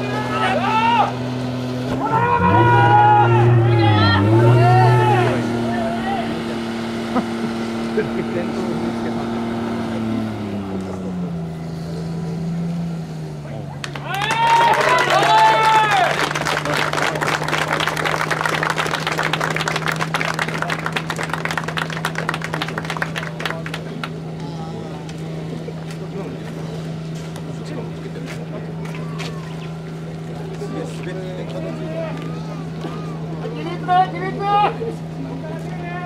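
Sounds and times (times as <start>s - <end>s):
people shouting: 0.0s - 1.2s, 2.0s - 6.4s, 14.0s - 16.2s
pump engine running at high revs: 0.0s - 14.0s
faint voices: 1.9s - 36.0s.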